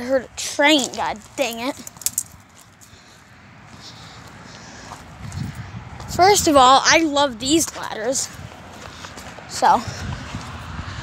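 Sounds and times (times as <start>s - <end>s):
footsteps on gravel: 0.0s - 10.8s.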